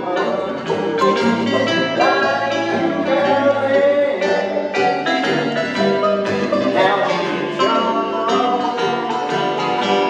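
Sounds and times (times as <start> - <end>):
banjo: 0.0 - 10.0
bluegrass band playing: 0.0 - 10.0
man singing: 0.0 - 10.0
strummed acoustic guitars: 0.0 - 10.0.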